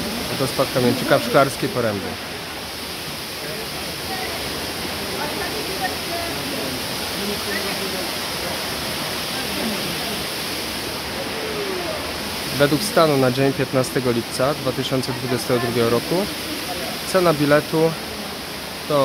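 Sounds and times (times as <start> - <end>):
waterfall rushing: 0.0 - 19.0
faint voices: 3.2 - 18.8.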